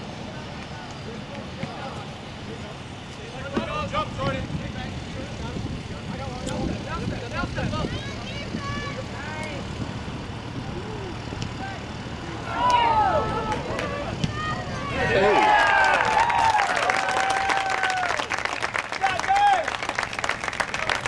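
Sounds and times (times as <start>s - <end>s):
players and spectators shouting: 10.7s - 18.2s, 18.9s - 19.8s.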